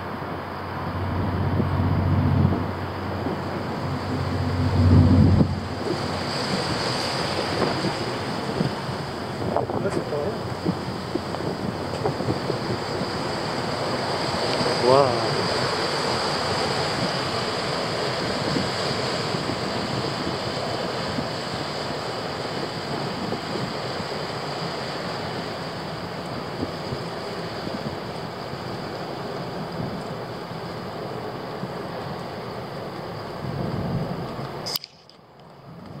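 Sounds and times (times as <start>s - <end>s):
wind on microphone: 0.0s - 30.3s, 33.2s - 34.7s
river water flowing: 0.0s - 35.8s.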